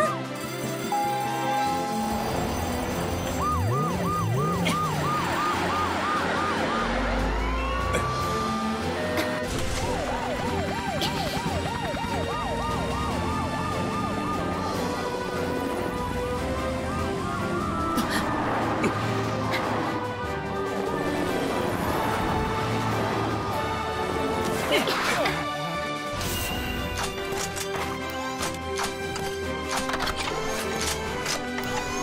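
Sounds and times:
background music: 0:00.0 - 0:32.0
cartoon sirens yelping: 0:01.0 - 0:18.4
upward siren sweep: 0:01.0 - 0:18.8.

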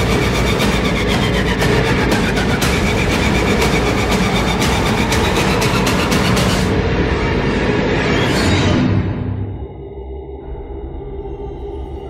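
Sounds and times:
horror film score: 0:00.0 - 0:12.0.

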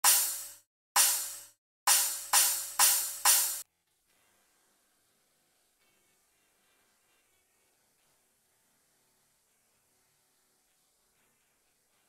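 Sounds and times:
cymbal strikes: 0:00.0 - 0:03.6.

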